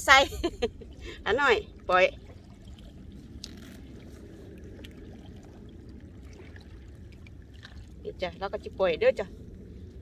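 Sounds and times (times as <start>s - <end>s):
wind rumble: 0.0s - 10.0s.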